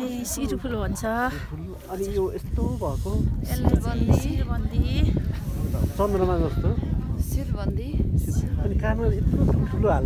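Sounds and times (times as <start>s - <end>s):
other voices: 0.0s - 10.0s
woman talking: 3.5s - 5.2s, 7.2s - 8.3s.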